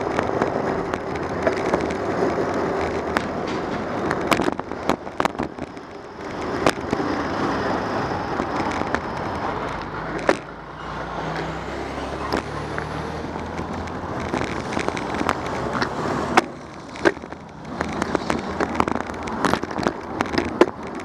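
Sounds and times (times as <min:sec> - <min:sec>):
bicycle knocks and rattles: 0:00.0 - 0:10.5, 0:12.2 - 0:21.0
bicycle tyre noise: 0:00.0 - 0:21.0
wind noise: 0:00.0 - 0:21.0.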